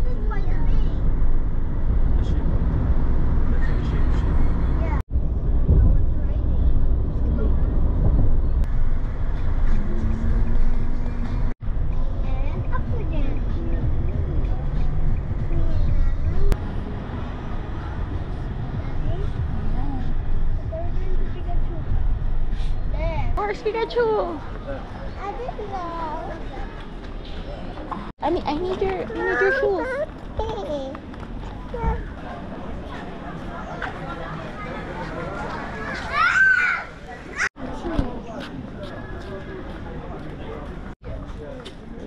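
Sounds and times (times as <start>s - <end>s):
car road and engine rumble: 0.0s - 23.4s
chatter of people walking: 11.8s - 42.0s
quiet talking: 11.8s - 42.0s.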